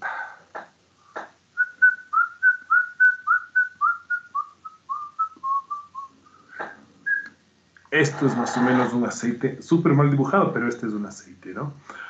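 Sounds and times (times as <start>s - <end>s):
person whistling short notes: 7.1s - 7.4s.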